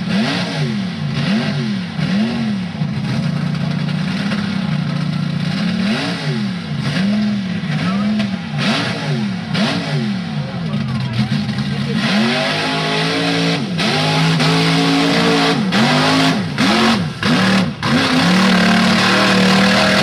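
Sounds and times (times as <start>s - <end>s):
truck engine revving: 0.0s - 20.0s.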